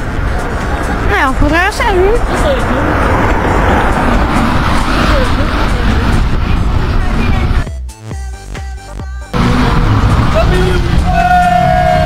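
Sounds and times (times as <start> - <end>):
car running close by: 0.0 - 7.6, 9.4 - 12.0
street noise rumble: 0.0 - 12.0
music: 7.0 - 9.4.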